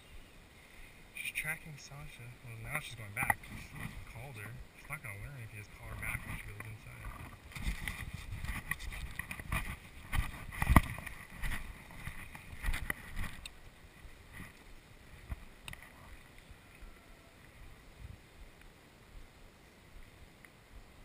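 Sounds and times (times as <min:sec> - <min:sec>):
footsteps through tall grass: 0:05.8 - 0:14.6.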